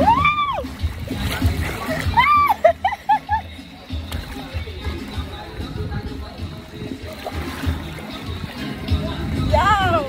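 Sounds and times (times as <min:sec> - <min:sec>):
person whooping: 0:00.0 - 0:00.7, 0:02.1 - 0:02.7
water rushing and splashing: 0:00.0 - 0:10.0
person laughing: 0:01.9 - 0:03.6.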